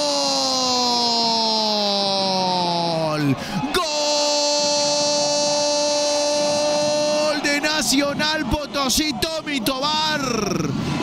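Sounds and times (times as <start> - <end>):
commentator's drawn-out goal cry: 3.2 - 10.6.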